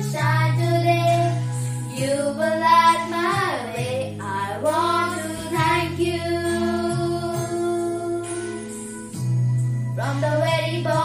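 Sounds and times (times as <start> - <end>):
girls singing: 0.0 - 8.7, 10.0 - 11.0
low musical accompaniment: 0.0 - 11.0.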